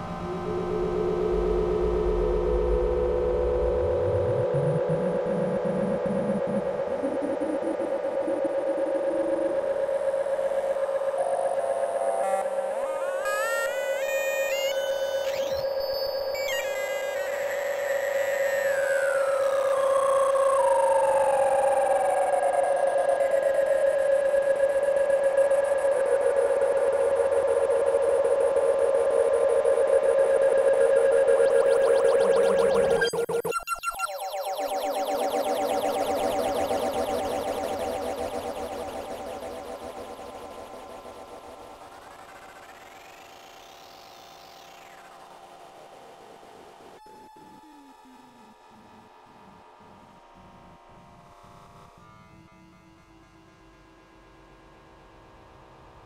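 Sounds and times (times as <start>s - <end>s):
synthesizer drone: 0.0s - 9.6s, 23.9s - 45.2s.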